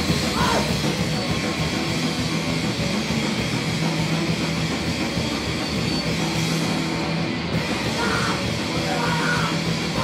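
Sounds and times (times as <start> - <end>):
distorted electric guitar: 0.0 - 10.0
pounding drum kit: 0.0 - 10.0.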